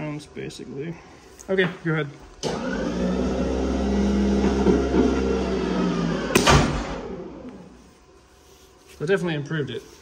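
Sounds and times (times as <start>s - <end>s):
test machine humming: 2.4s - 8.0s.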